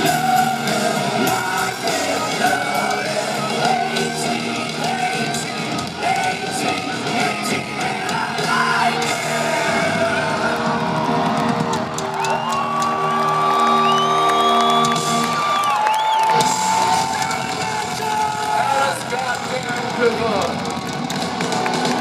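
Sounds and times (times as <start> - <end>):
audience cheering: 0.0 - 22.0
live hard rock band: 0.0 - 22.0.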